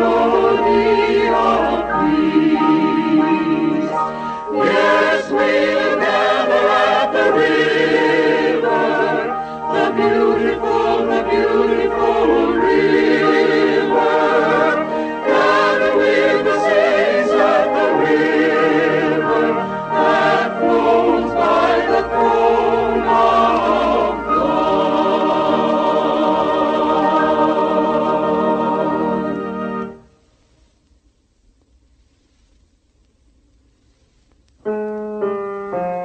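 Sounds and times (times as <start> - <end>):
choir singing a hymn: 0.0 - 30.0.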